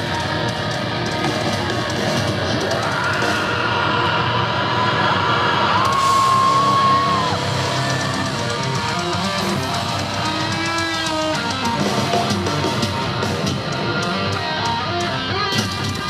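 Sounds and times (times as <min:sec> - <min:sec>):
rock band playing live: 0:00.0 - 0:16.0.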